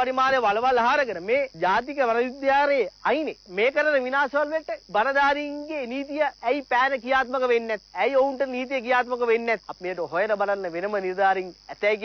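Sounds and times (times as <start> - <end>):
steady high hiss: 0.0 - 12.0.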